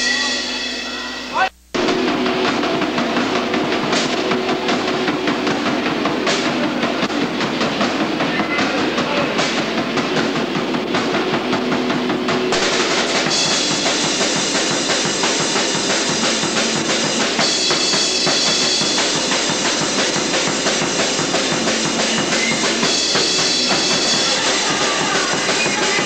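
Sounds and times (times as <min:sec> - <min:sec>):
fast busy drumming: 0:00.0 - 0:26.0
loud distorted rock band: 0:00.0 - 0:26.0.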